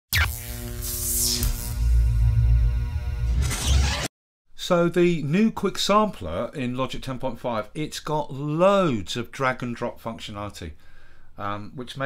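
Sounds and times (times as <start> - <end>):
deep pulsing bass: 1.4 - 3.4.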